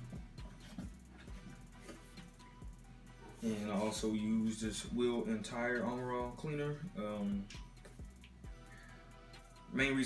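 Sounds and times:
faint background music with beat: 0:00.0 - 0:10.0.

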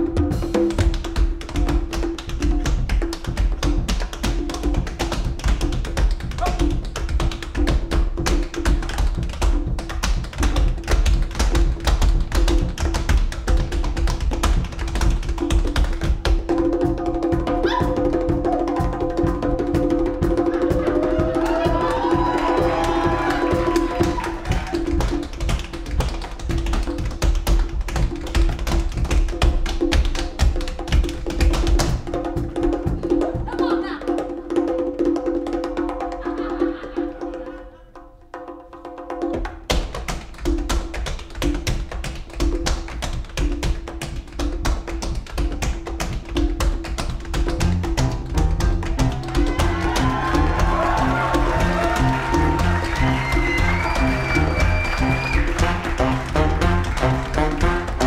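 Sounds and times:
tap dancing shoes: 0:00.7 - 0:17.8, 0:20.3 - 0:33.7, 0:39.3 - 0:58.0
jazz band playing: 0:47.6 - 0:58.0.

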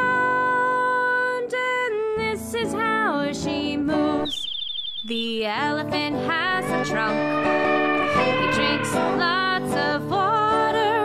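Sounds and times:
children's song music: 0:00.0 - 0:11.0
high bird chirps: 0:04.2 - 0:05.6.

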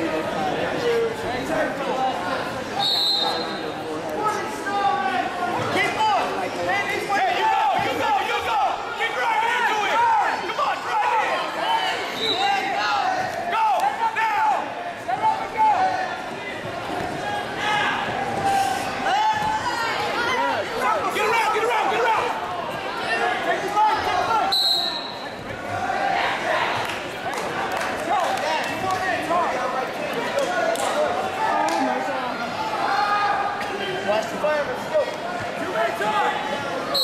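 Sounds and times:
crowd shouting and yelling: 0:00.0 - 0:37.0
referee's whistle: 0:02.8 - 0:03.6, 0:12.1 - 0:12.6, 0:24.5 - 0:25.4.

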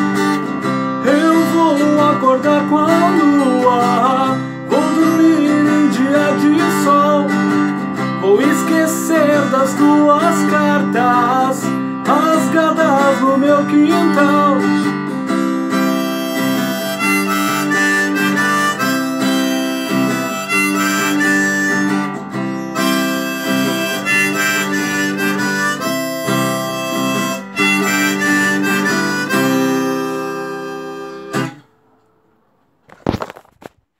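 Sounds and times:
harmonica: 0:00.0 - 0:31.7
strummed acoustic guitar: 0:00.0 - 0:32.2.

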